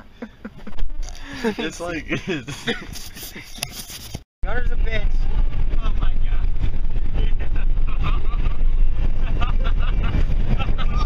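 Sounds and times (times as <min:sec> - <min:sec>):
car cabin road and wind noise: 0:04.0 - 0:11.0.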